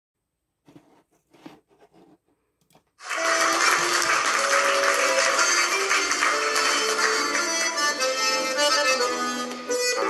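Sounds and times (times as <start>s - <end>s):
accordion playing: 3.1s - 10.0s.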